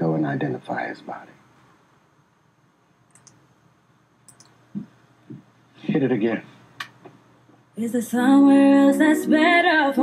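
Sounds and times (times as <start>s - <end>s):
faint sharp high clicks: 3.1s - 3.4s, 4.2s - 4.6s.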